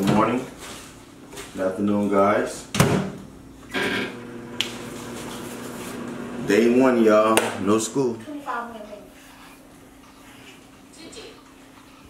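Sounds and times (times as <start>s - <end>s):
microwave oven humming: 3.4s - 7.2s.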